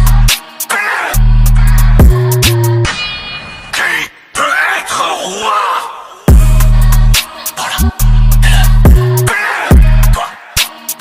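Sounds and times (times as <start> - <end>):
hip-hop backing music: 0.0 - 11.0
person wordless vocal sound: 3.7 - 10.4.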